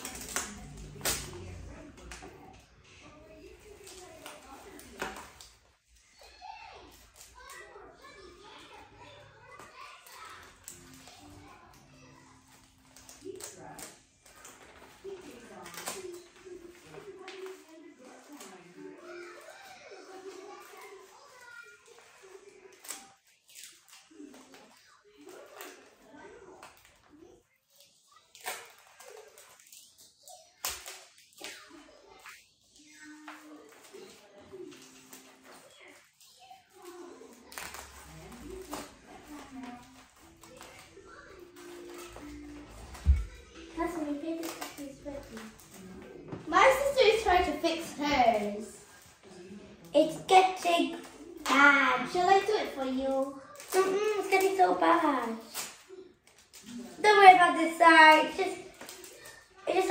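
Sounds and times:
rustling plastic and paper: 0.0s - 59.9s
child's quiet voice: 18.8s - 23.1s, 31.4s - 45.5s.

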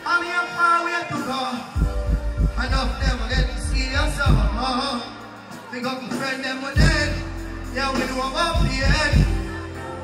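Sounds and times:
deejay voice over music: 0.0s - 9.9s
dancehall music with heavy bass: 0.0s - 10.0s.

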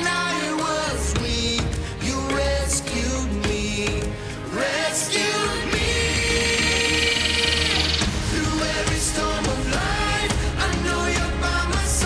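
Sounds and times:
band accompaniment: 0.0s - 12.0s
children's choir singing worship song: 0.0s - 12.0s.

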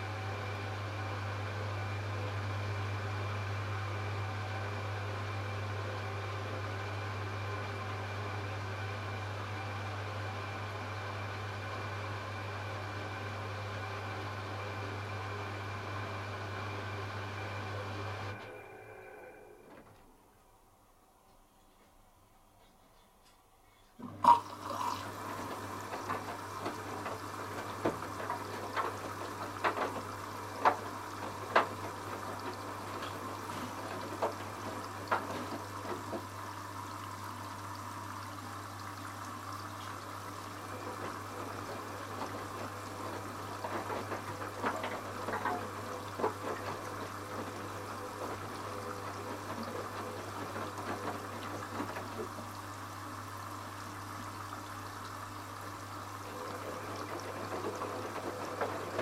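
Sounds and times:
water sloshing in washing machine: 0.0s - 20.3s, 24.0s - 59.0s
washing machine low hum: 0.0s - 59.0s.

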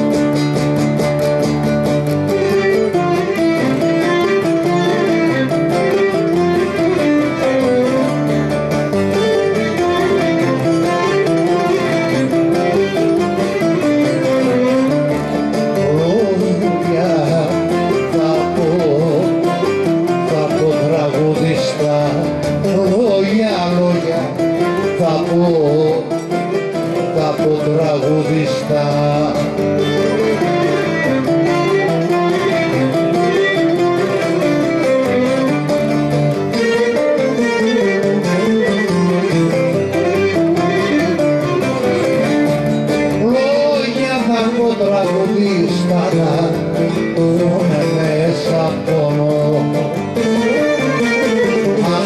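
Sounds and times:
folk music on plucked strings: 0.0s - 52.0s.

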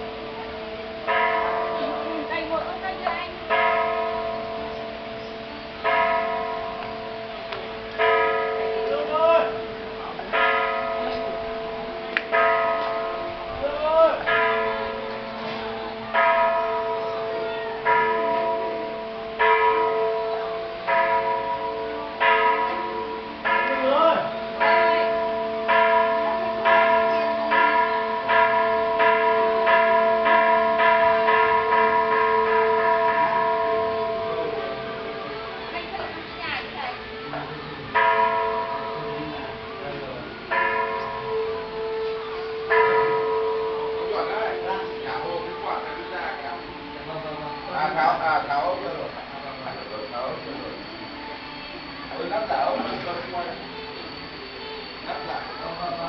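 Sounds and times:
bell ringing: 14.2s - 56.0s.

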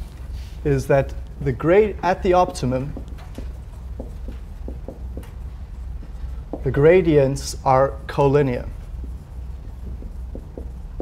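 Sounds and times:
low room hum: 0.0s - 11.0s
marker tapping on whiteboard: 2.2s - 5.4s, 6.0s - 6.9s, 9.0s - 11.0s.

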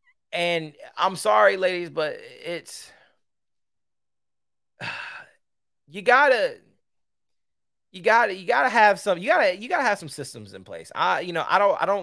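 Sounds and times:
man sighing: 4.8s - 5.4s.

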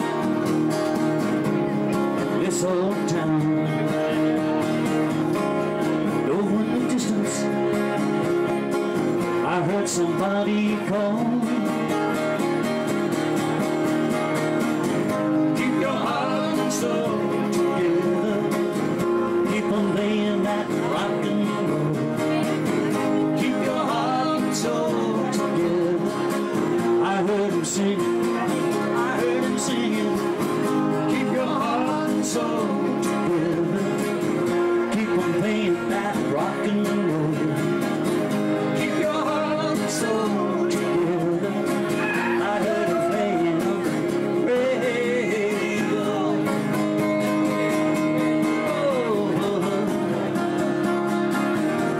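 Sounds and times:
live band with acoustic guitar: 0.0s - 51.9s.

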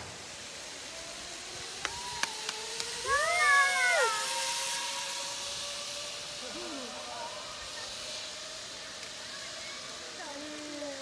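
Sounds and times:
steel cable hissing: 0.0s - 11.0s
pulleys whining: 1.4s - 11.0s
person whooping: 3.1s - 4.5s.

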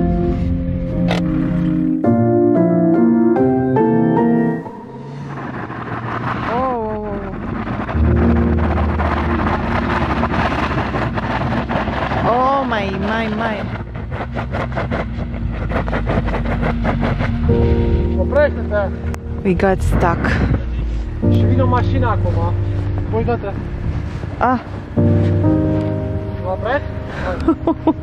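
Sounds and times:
piano music: 0.0s - 6.3s, 7.3s - 14.1s, 16.6s - 28.0s
rushing noise: 4.3s - 27.3s
car engine running: 4.6s - 28.0s.

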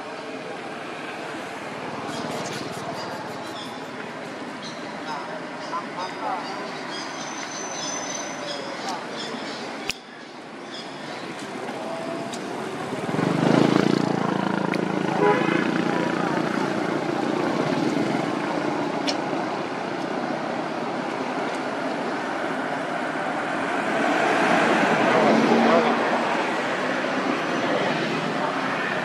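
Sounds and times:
distant people talking: 0.0s - 19.6s, 24.4s - 29.0s.

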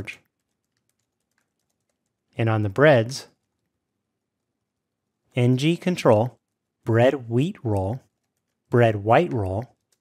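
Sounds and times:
faint keyboard typing: 0.0s - 10.0s.

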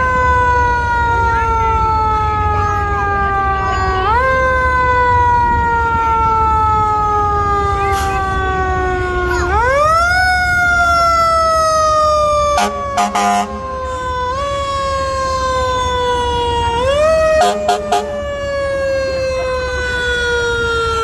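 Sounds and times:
fire engine siren wailing: 0.0s - 21.0s.

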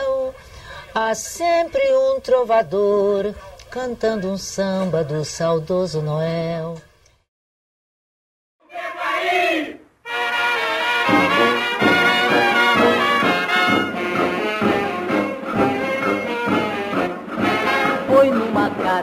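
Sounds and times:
brass-led band playing: 10.1s - 19.0s
person singing samba song: 17.4s - 19.0s.

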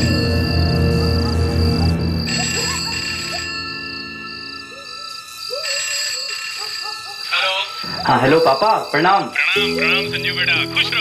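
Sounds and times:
low music drone: 0.0s - 3.9s
crickets chirping: 0.0s - 11.0s
telephone ringing: 0.0s - 11.0s.

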